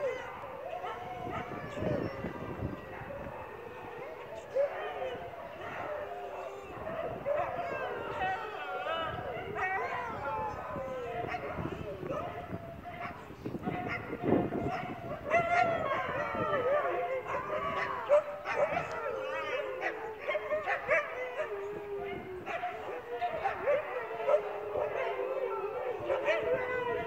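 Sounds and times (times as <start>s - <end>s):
huskies howling in chorus: 0.0s - 27.0s.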